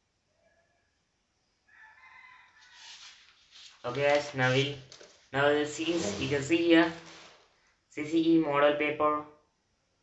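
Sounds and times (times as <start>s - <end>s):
faint drawn-out animal call: 0.3s - 1.1s
book page rustling: 2.6s - 7.5s.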